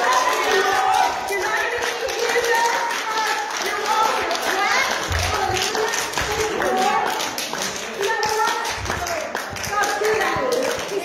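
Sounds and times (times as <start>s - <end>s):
congregation clapping: 0.0s - 11.0s.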